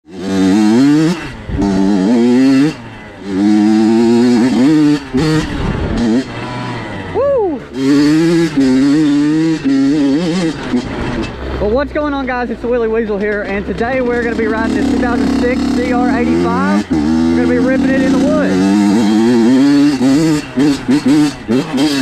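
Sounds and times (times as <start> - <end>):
dirt bike engine revving: 0.0 - 22.0.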